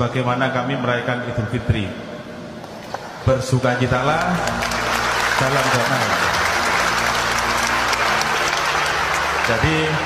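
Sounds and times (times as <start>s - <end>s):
large audience applauding: 3.8s - 10.0s.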